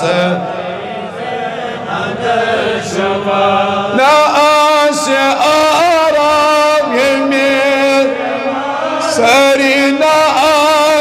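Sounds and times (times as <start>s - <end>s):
man chanting into a microphone: 0.0s - 0.7s, 2.8s - 11.0s.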